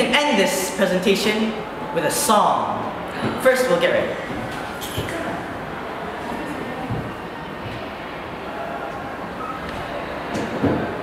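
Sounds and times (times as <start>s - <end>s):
room background noise: 0.0s - 11.0s.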